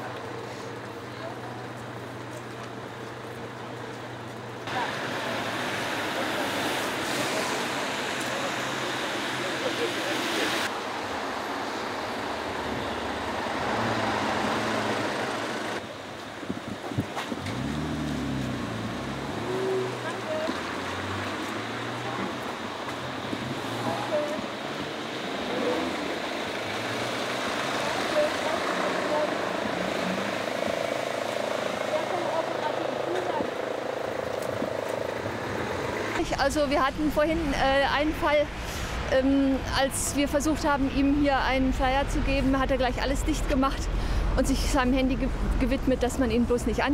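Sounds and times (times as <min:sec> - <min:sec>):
cars passing on wet asphalt: 0:04.7 - 0:39.6
people's voices: 0:27.8 - 0:29.4.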